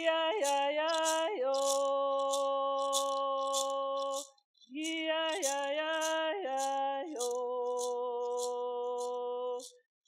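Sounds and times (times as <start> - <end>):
handheld rattle shaken: 0.0 - 9.9.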